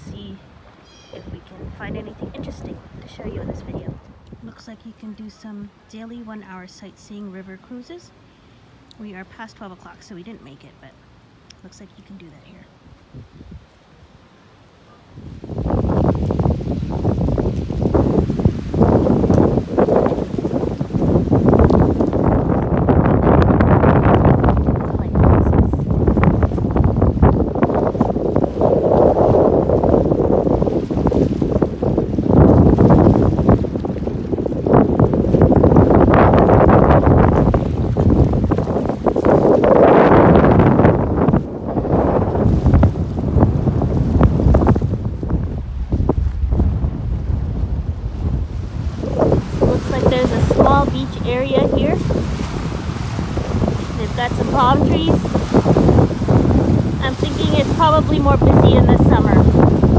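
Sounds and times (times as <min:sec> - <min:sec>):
gusty wind buffeting microphone: 0:00.0 - 0:59.9.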